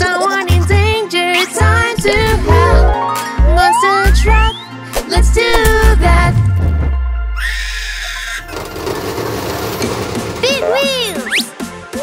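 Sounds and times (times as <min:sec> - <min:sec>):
cartoon high squeal: 0:03.5 - 0:04.7, 0:07.4 - 0:08.5.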